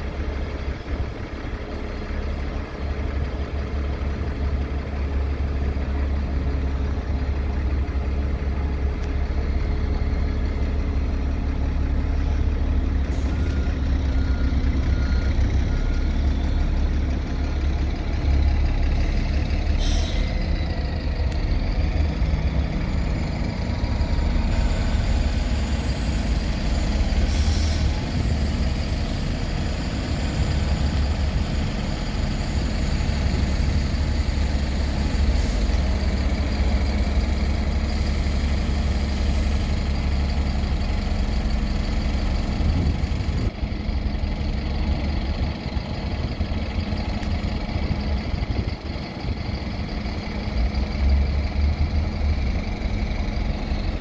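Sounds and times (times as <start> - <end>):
bus diesel engines rumbling: 0.0 - 54.0
air brake hisses: 18.9 - 20.4, 27.2 - 28.0, 35.3 - 35.8.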